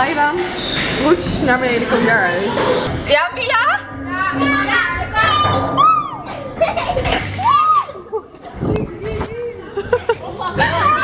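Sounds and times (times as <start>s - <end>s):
woman squealing and shrieking: 7.4s - 8.1s.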